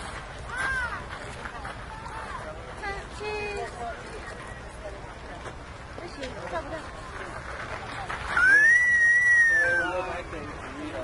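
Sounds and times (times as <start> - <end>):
crowd chatter: 0.0 - 11.0
long high whistle: 8.4 - 9.9.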